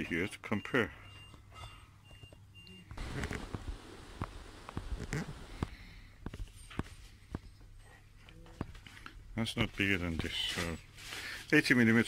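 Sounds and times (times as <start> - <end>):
low steady hum: 0.0 - 11.1.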